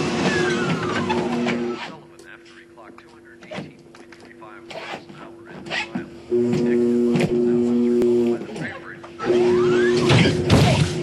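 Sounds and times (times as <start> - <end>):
treadmill motor whine: 0.0 - 1.9, 4.7 - 11.0.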